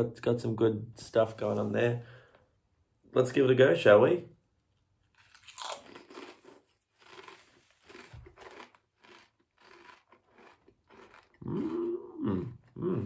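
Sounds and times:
potato chip crunching: 0:05.0 - 0:12.7
person humming: 0:11.4 - 0:13.0.

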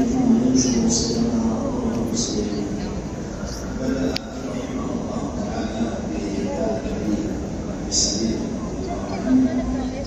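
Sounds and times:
murmur of large crowd: 0:00.0 - 0:10.0.

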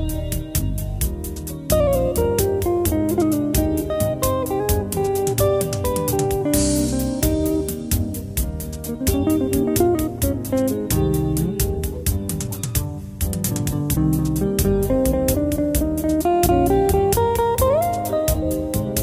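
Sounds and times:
bass line: 0:00.0 - 0:19.0
lead guitar melody: 0:00.0 - 0:19.0
steady beat: 0:00.0 - 0:19.0.

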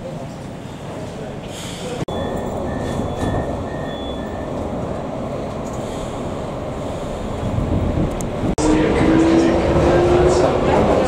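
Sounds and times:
metro train rumbling: 0:00.0 - 0:11.0
door-closing warning beeps: 0:02.1 - 0:04.9.

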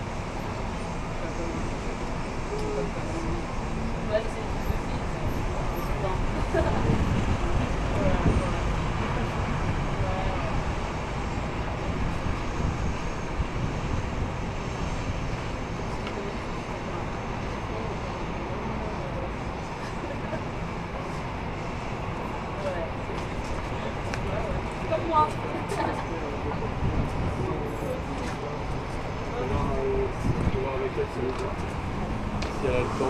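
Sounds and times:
street traffic noise: 0:00.0 - 0:33.0
faint voices: 0:01.0 - 0:15.1, 0:15.7 - 0:33.0.

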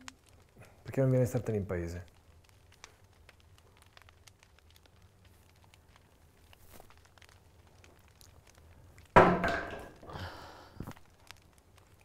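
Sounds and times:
wood fire crackling: 0:00.0 - 0:12.0.

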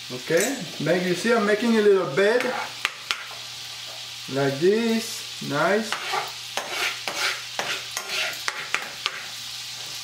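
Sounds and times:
sauce sizzling in a pan: 0:00.0 - 0:10.0.

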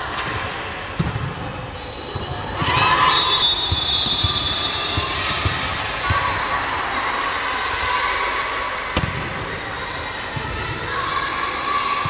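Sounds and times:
volleyball hits and bounces: 0:00.1 - 0:03.1, 0:03.7 - 0:06.4, 0:08.9 - 0:09.4.

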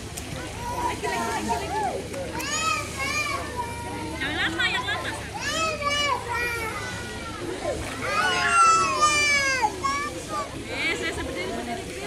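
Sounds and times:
children calling out: 0:01.7 - 0:04.2, 0:05.2 - 0:10.6.

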